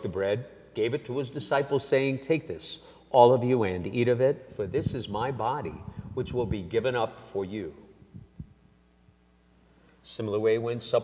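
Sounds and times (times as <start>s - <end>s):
steady low hum: 0.0s - 11.0s
soft low thumps: 4.6s - 6.7s, 8.0s - 8.7s.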